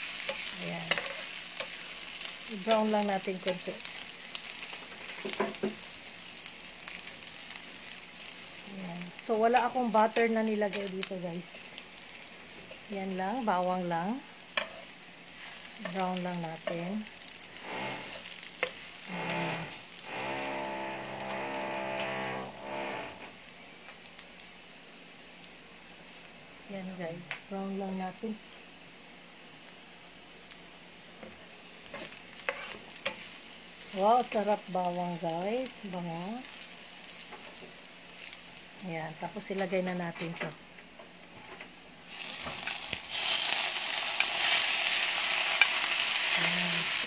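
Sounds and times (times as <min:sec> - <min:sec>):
garlic sizzling in hot oil: 0:00.0 - 0:47.0.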